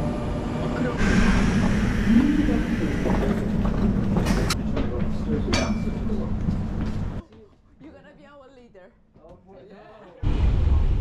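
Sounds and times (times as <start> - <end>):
train rumble inside carriage: 0.0 - 7.2.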